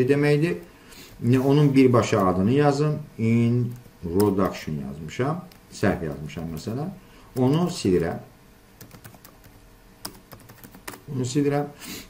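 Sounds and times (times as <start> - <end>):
keyboard keystrokes: 3.7 - 4.6, 8.8 - 11.0.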